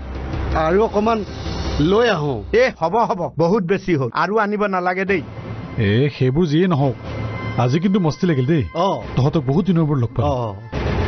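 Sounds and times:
man speaking: 0:07.6 - 0:10.6.

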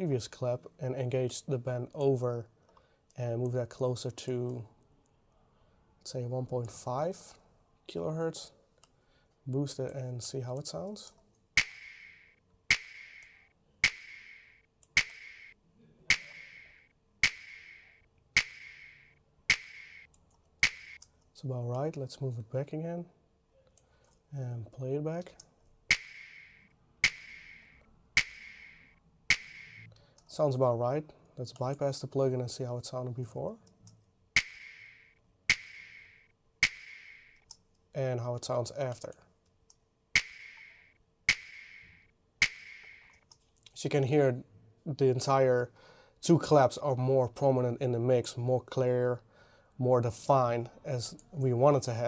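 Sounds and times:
sharp hip-hop claps: 0:11.6 - 0:15.5, 0:16.1 - 0:20.0, 0:20.6 - 0:21.0, 0:25.9 - 0:29.9, 0:34.4 - 0:34.9, 0:35.5 - 0:37.2, 0:40.2 - 0:43.1.

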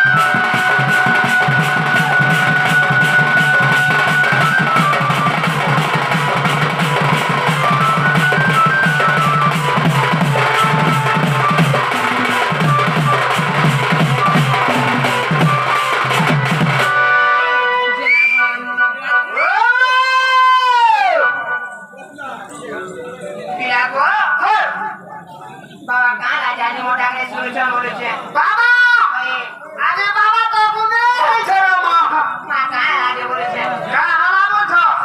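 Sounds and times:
barrel drum beaten fast: 0:00.0 - 0:17.0
electronic keyboard melody: 0:00.0 - 0:19.4, 0:21.2 - 0:25.2.

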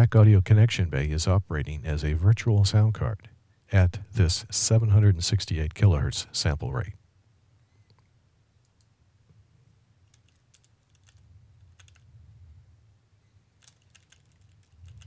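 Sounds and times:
computer keyboard key clicks: 0:10.1 - 0:11.2, 0:11.8 - 0:12.0, 0:13.6 - 0:15.0
low hum: 0:11.1 - 0:13.6.

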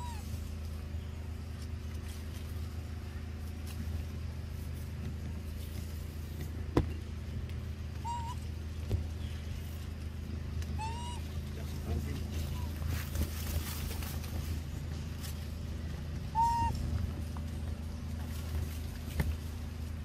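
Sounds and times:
short high animal calls: 0:00.0 - 0:00.4, 0:08.0 - 0:08.5, 0:10.8 - 0:11.4, 0:16.3 - 0:16.9
low motor hum: 0:00.0 - 0:20.0.

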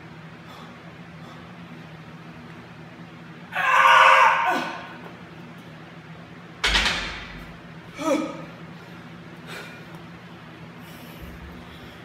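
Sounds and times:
steady low hum: 0:00.0 - 0:03.6, 0:04.4 - 0:12.0
man grunting with effort: 0:07.9 - 0:08.5.

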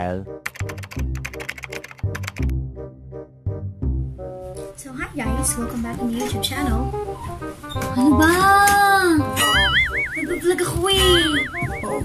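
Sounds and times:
keyboard typing clicks: 0:00.4 - 0:02.5
background music with bass: 0:02.4 - 0:04.5.

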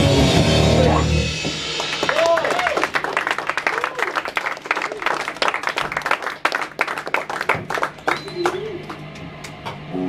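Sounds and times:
audience applauding: 0:01.6 - 0:09.6.

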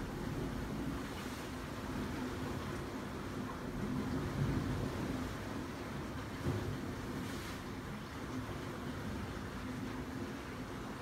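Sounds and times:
surf rumbling in sea cave: 0:00.0 - 0:11.0.

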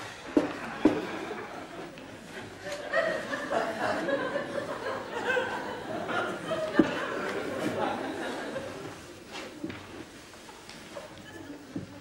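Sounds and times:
audience chuckling: 0:00.4 - 0:09.2.

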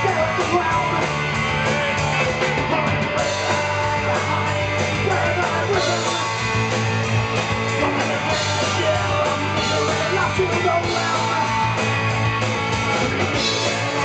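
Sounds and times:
electric guitar: 0:00.0 - 0:14.0
live punk rock band: 0:00.0 - 0:14.0.

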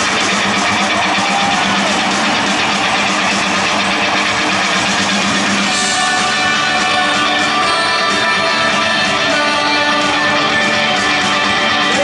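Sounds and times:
electric guitar: 0:00.0 - 0:12.0
live rock band: 0:00.0 - 0:12.0
loud crowd noise: 0:00.0 - 0:12.0.

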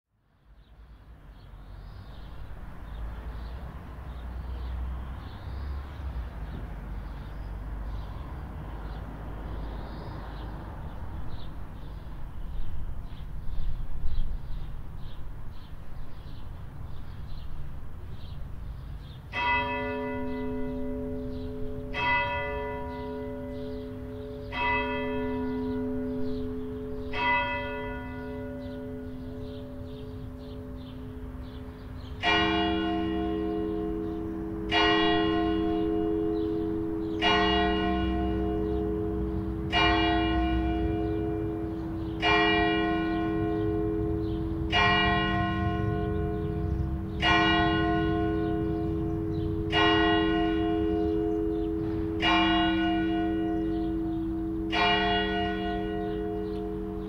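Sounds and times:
church bells ringing: 0:19.2 - 0:57.0.

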